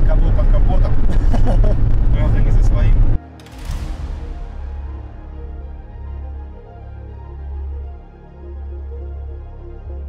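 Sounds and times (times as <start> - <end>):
low road noise rumble: 0.0 - 3.2.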